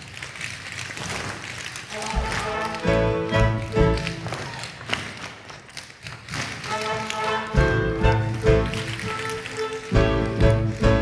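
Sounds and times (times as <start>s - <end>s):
tap shoes on wooden floor: 0.2s - 11.0s
band playing: 1.9s - 4.3s, 6.7s - 11.0s.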